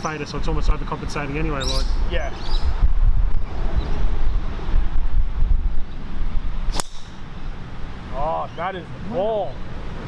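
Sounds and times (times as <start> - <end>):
wind on microphone: 1.4 - 7.5
golf club striking ball: 6.7 - 7.4.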